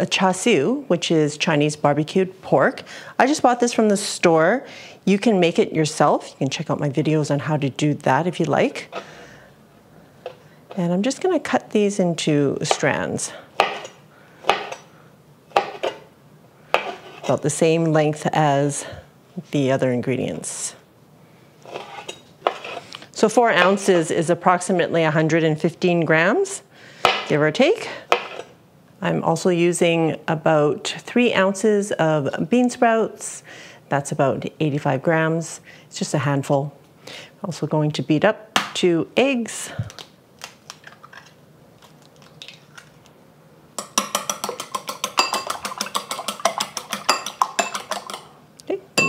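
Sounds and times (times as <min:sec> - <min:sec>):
chopsticks clicking on bowl: 0:43.8 - 0:48.3.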